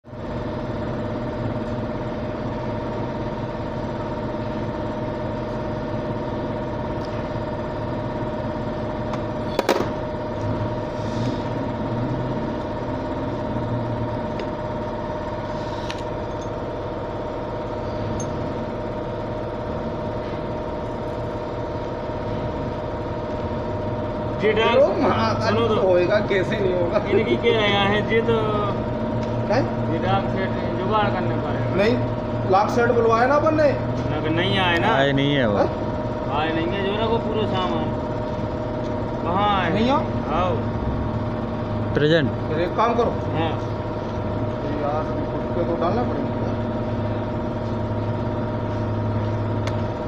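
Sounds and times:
engine-like hum: 0:00.0 - 0:50.0.

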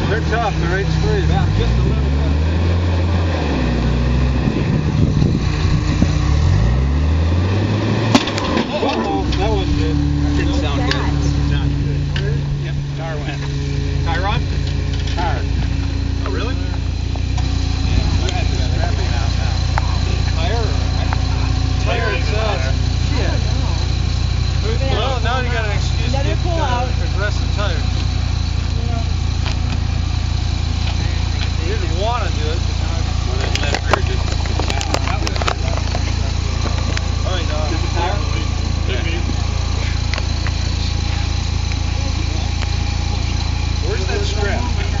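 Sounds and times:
people talking: 0:00.0 - 0:06.6, 0:08.3 - 0:45.0
engine idling: 0:00.0 - 0:45.0.

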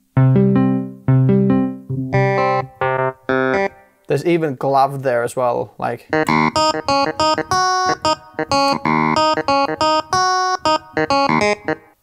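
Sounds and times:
clavinet notes and chords: 0:00.2 - 0:03.9, 0:06.1 - 0:12.0.

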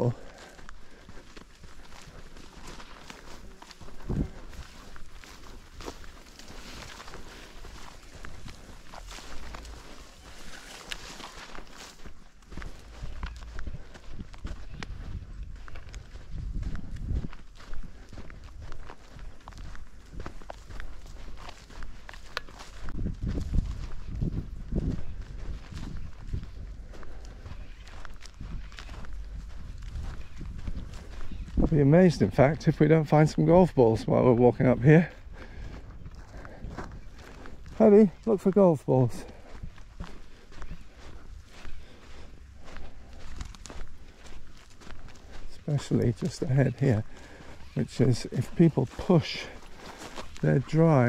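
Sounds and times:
footsteps on sandy path: 0:00.0 - 0:51.0
low microphone rumbles: 0:22.8 - 0:31.8.

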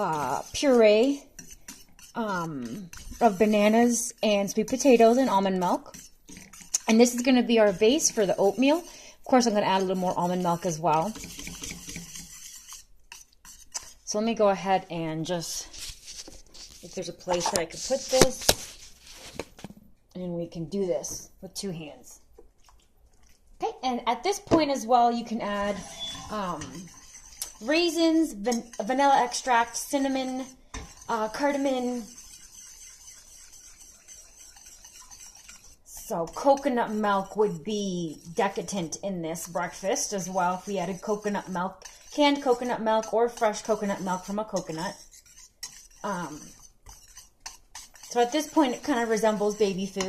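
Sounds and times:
whisk ticking against metal pan: 0:00.0 - 0:14.0, 0:26.3 - 0:50.0
whisk stirring thick puree: 0:00.0 - 0:19.5, 0:21.5 - 0:50.0.

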